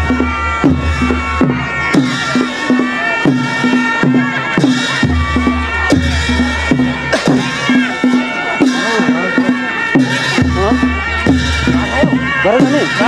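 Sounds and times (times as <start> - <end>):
drum beat: 0.0 - 13.0.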